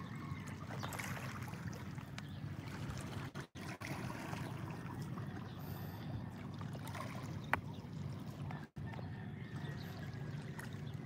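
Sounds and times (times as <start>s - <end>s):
small waves lapping on rocks: 0.6s - 6.0s.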